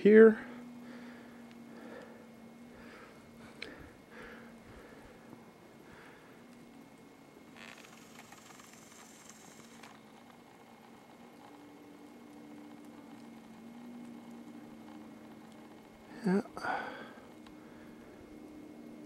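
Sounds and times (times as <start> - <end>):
background hiss: 0.0 - 19.0
faint steady hum: 0.0 - 19.0.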